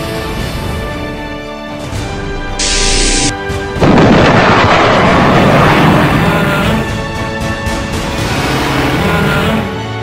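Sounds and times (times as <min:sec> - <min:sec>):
short hiss: 0:02.6 - 0:03.3
loud explosion-like blast rumbling: 0:03.8 - 0:06.3.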